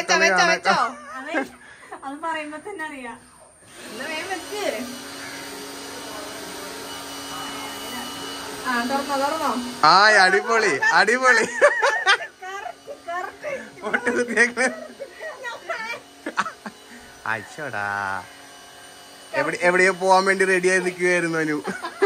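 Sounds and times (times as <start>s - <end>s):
people talking loudly: 0.0s - 3.1s
low buzz: 0.0s - 22.0s.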